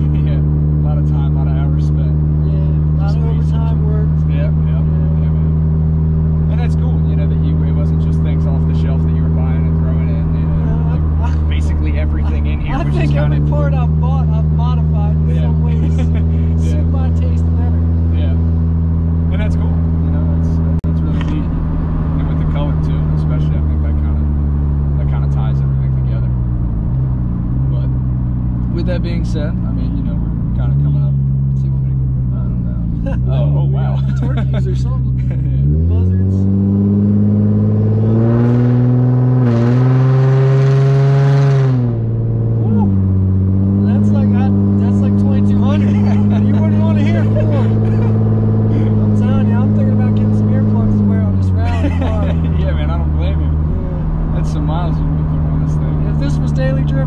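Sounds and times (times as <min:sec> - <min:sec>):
car engine accelerating: 0:00.0 - 0:57.0.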